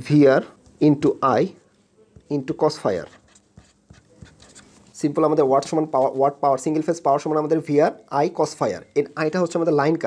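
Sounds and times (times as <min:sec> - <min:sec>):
pen writing on paper: 0:02.8 - 0:04.8.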